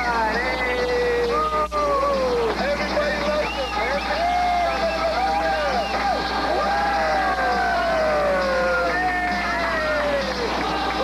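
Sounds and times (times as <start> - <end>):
voices shouting and yelling: 0.0 - 11.0.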